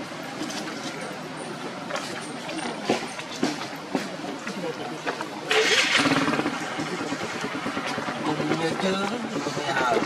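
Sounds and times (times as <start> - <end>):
motorbike engine: 5.5 - 10.0.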